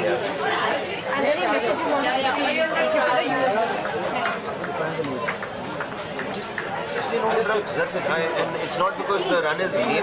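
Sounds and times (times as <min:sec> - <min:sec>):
overlapping chatter of voices: 0:00.0 - 0:10.0.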